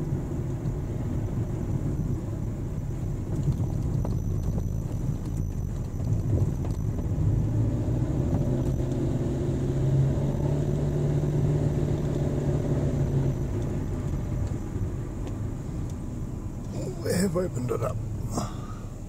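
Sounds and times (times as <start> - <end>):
car engine hum: 0.0 - 19.0
road rumble: 0.0 - 19.0.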